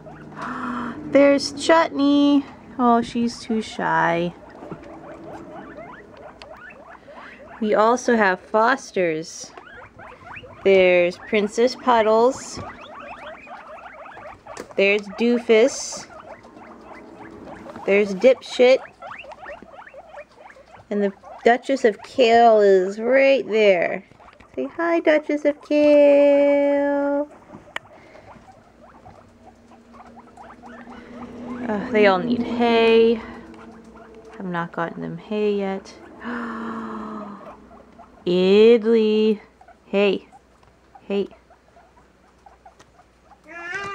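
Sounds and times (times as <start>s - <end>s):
guinea pigs squeaking: 0.0s - 43.9s.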